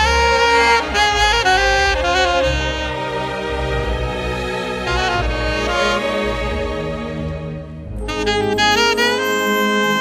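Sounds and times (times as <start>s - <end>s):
saxophone melody: 0.0s - 3.9s, 4.8s - 6.5s, 7.8s - 10.0s.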